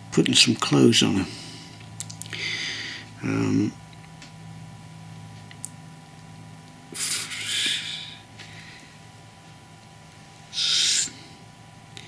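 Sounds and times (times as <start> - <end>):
breathy hiss of air: 2.4 - 3.1, 6.9 - 9.1, 10.5 - 11.4.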